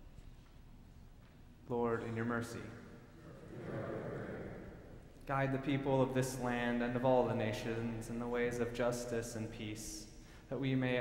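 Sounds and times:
congregation speaking together: 1.7 - 11.0.

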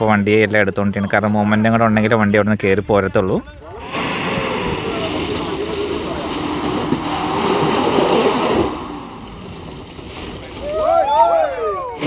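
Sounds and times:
tyres churning mud: 3.7 - 12.0
engine working hard under load: 3.8 - 10.5.

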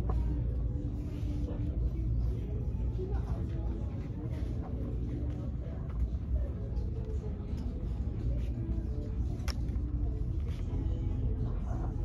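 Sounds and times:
faint indistinct background sounds: 0.0 - 12.0.

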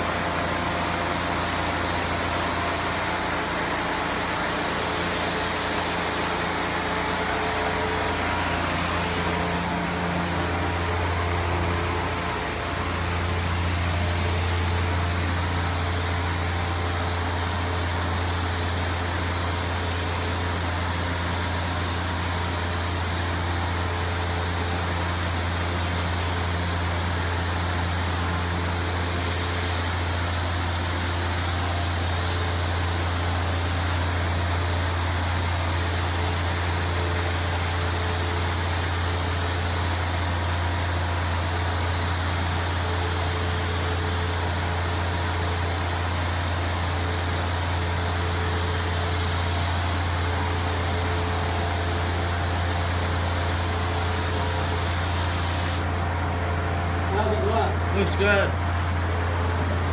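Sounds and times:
spray gun hissing: 0.0 - 58.2
low machine hum: 0.0 - 59.9.

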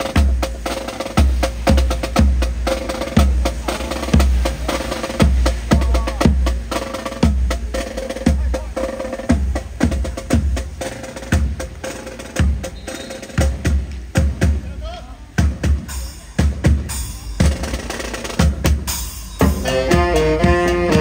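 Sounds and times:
marching band playing: 0.0 - 21.0
snare drum: 0.0 - 21.0.

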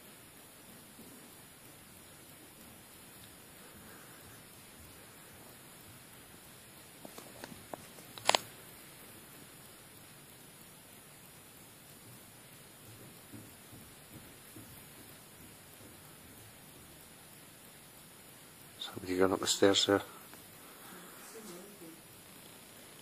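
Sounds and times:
faint soft sounds: 0.0 - 23.0
room hiss: 0.0 - 23.0.

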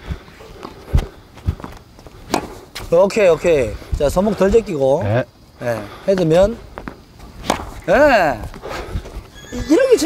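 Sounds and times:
tennis racket hitting ball: 2.2 - 3.0, 7.4 - 7.9.

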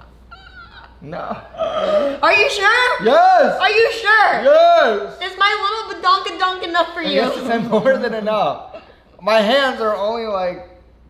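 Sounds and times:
woman squealing with laughter: 0.3 - 1.0
man speaking: 7.0 - 10.8.

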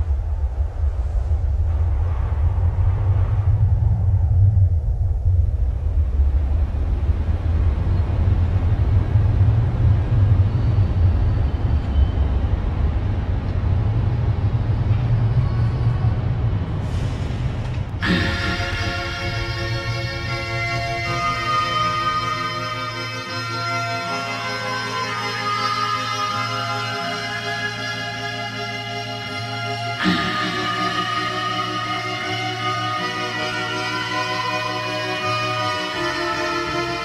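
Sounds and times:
deep steady rumble: 0.0 - 25.2
music with clear notes: 18.0 - 37.0.

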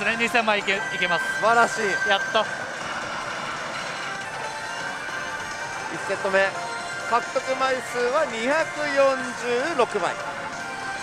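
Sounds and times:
thin steady high tone: 0.0 - 9.8.

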